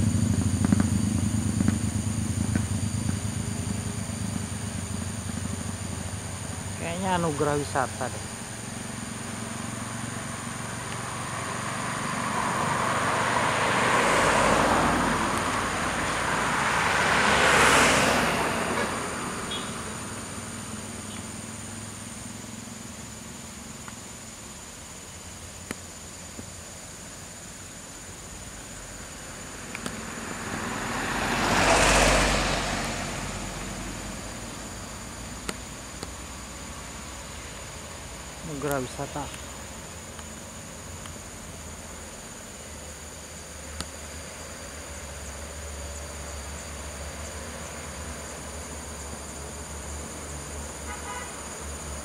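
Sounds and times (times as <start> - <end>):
bus engine drone: 0.0 - 52.0
passing vehicles: 0.0 - 52.0.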